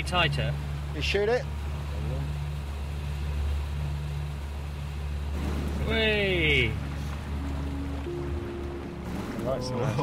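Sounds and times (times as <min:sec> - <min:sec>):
speedboat engine humming: 0:00.0 - 0:10.0.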